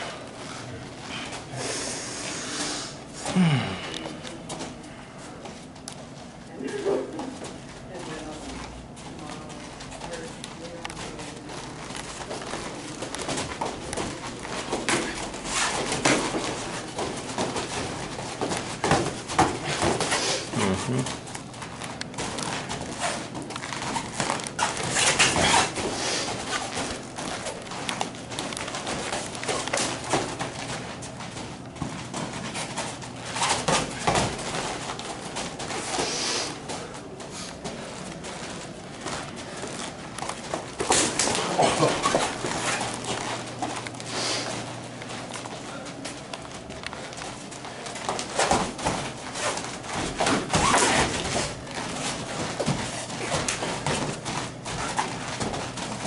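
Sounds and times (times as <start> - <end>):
feet shuffling on mats: 0.2 - 56.0
sharp breaths: 1.0 - 4.2, 35.8 - 36.7, 44.0 - 44.6.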